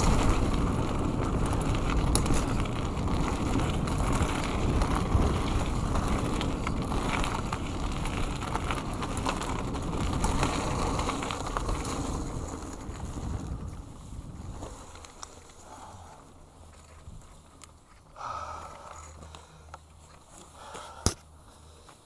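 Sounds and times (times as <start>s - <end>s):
wind buffeting microphone: 0.0s - 15.1s
bike clicks and rattles: 0.0s - 22.0s
tyre noise on dirt: 0.0s - 22.0s.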